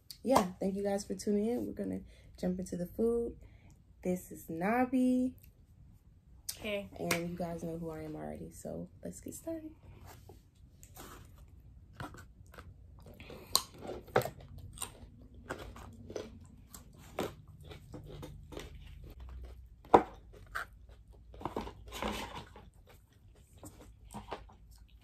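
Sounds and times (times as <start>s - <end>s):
chewing crunchy chicken: 12.4s - 25.0s.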